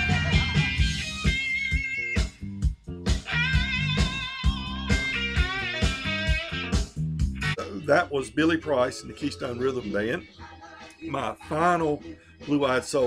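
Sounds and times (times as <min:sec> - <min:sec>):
soul record with electric guitar: 0:00.0 - 0:13.0.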